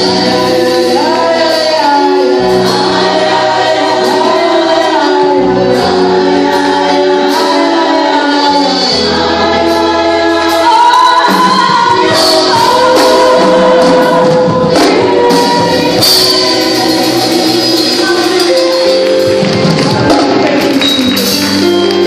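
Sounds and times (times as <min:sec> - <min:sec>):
congregation singing worship song: 0:00.0 - 0:22.0
musical backing with percussion: 0:00.0 - 0:22.0
woman singing into a microphone: 0:00.0 - 0:22.0.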